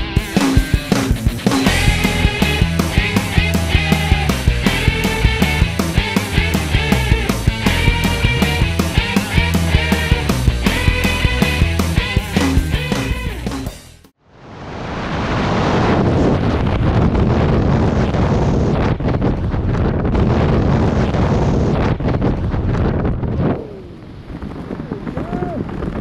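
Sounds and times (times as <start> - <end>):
music: 0.0 - 14.1
freefall wind on microphone: 14.2 - 26.0.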